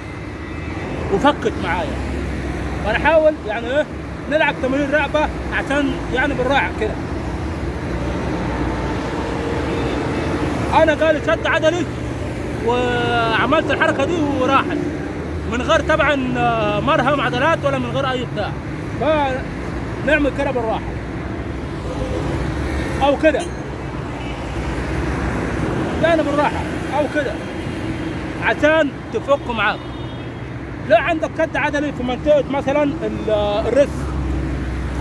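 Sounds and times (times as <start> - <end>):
road traffic rumble: 0.0 - 35.0.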